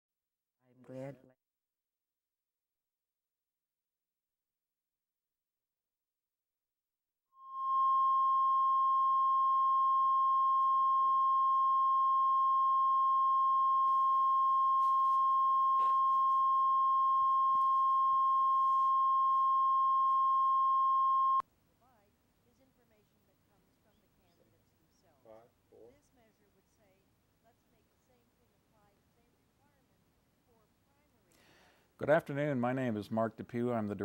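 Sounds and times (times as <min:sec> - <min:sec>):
steady pure test tone: 0:07.4 - 0:21.4.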